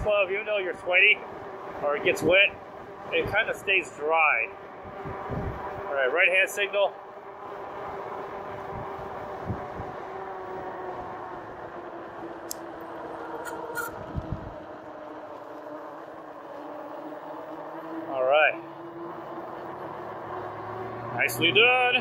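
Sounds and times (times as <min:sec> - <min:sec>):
electric bike riding hum: 0:00.0 - 0:22.0.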